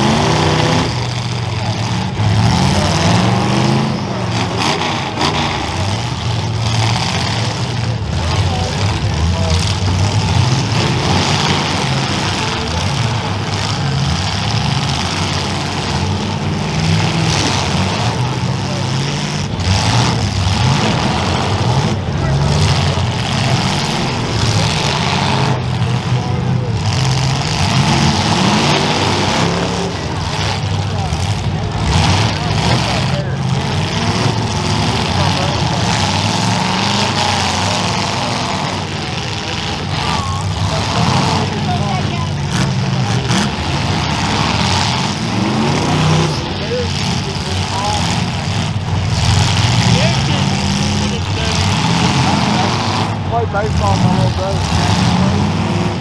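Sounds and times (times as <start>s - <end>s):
car engines revving: 0.0s - 56.0s
voices in background: 0.0s - 56.0s.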